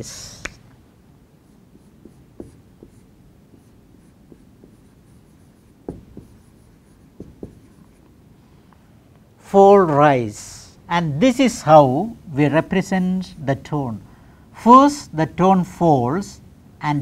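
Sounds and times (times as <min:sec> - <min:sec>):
marker pen writing on whiteboard: 0:01.4 - 0:08.2.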